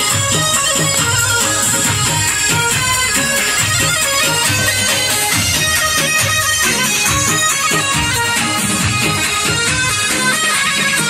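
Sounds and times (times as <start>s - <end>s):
low repeating beat: 0.0s - 11.0s
reedy held melody: 0.0s - 11.0s
hand clapping: 0.8s - 11.0s.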